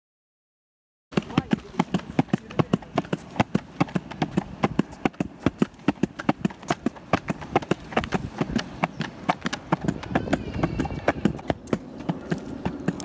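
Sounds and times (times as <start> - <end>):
footsteps on pavement: 1.1 - 13.0.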